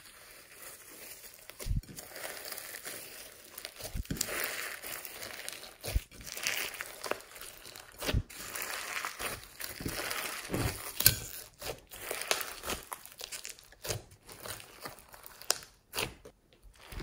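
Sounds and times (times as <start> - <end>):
slime squelching and crackling: 0.0 - 17.0.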